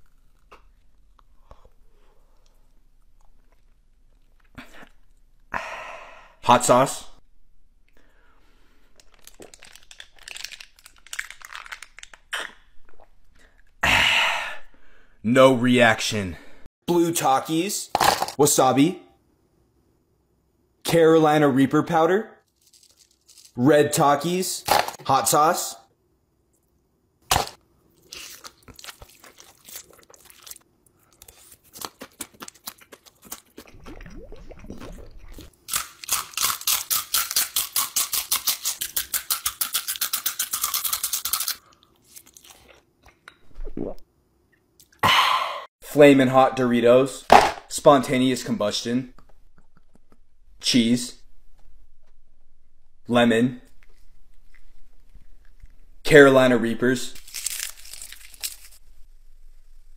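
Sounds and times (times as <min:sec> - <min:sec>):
noodles being slurped and chewed: 0:28.0 - 0:43.2
wet mouth sounds: 0:31.8 - 0:44.0, 0:49.1 - 0:50.3.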